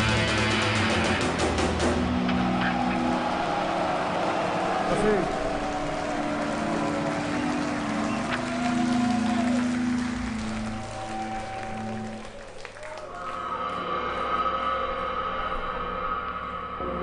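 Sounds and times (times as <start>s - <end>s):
crowd noise: 1.2s - 13.6s.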